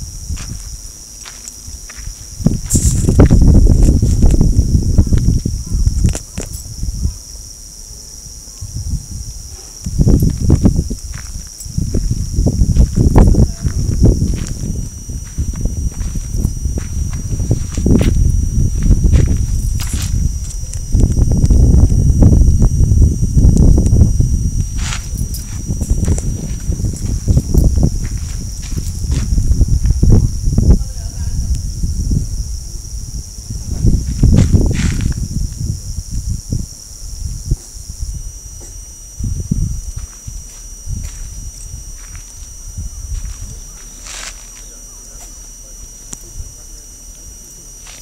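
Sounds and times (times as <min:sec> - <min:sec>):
wind buffeting microphone: 0:00.0 - 0:44.2
faint high whine: 0:00.0 - 0:48.0.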